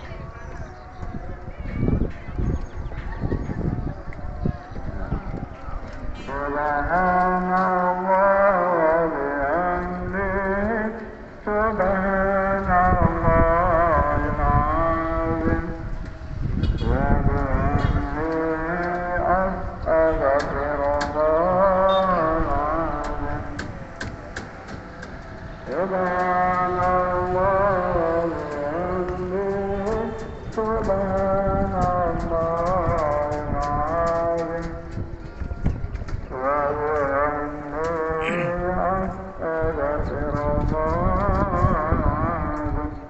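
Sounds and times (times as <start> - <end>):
person chanting held notes: 4.0 - 16.0, 16.8 - 24.3, 24.9 - 43.0
person chanting long note: 6.2 - 15.9, 36.3 - 43.0.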